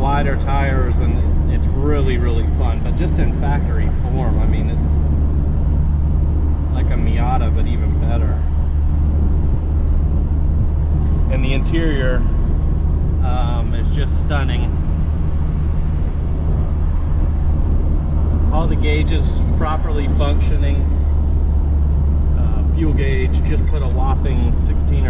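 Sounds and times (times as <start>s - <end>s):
car engine droning in cabin: 0.0s - 25.0s.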